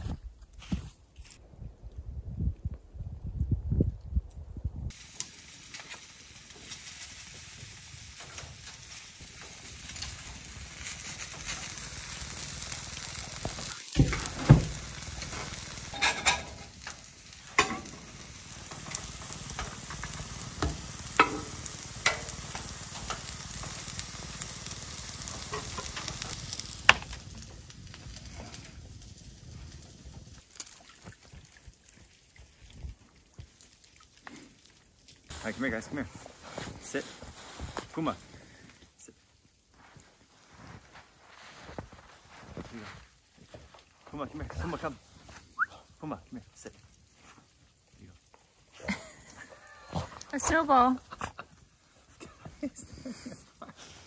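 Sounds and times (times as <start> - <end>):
fritters sizzling on a griddle: 4.9 - 30.8, 35.3 - 39.2, 39.8 - 45.6, 46.5 - 49.9
metal spoon and spatula scraping: 15.9 - 16.7, 21.2 - 22.4.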